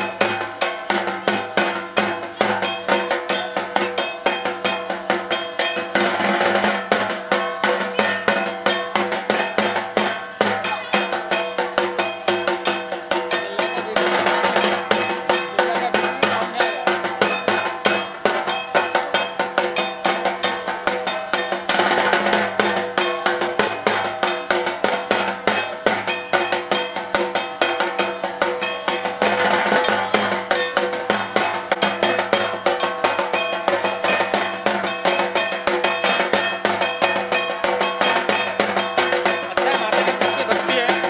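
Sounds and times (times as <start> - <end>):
fast drum-led dance music: 0.0 - 41.0.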